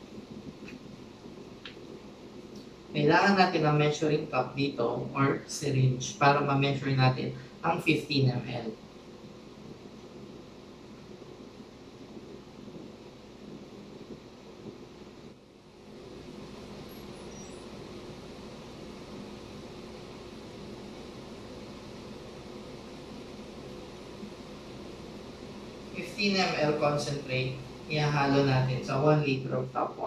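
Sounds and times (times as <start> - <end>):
ventilation fan humming: 0.0 - 30.0.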